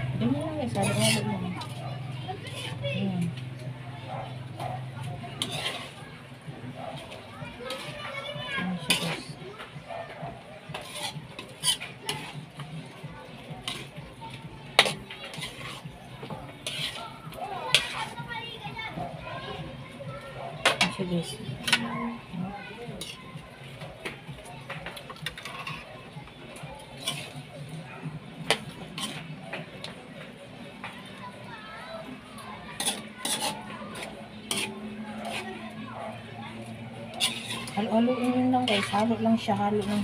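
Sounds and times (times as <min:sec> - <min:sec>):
background voices and children: 0:00.0 - 0:40.0
metal spoon stirring thick sauce: 0:00.0 - 0:40.0.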